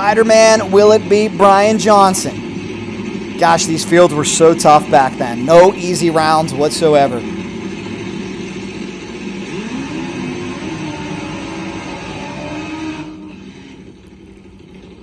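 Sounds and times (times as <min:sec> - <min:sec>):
drag motorcycle engines revving: 0:00.0 - 0:15.0.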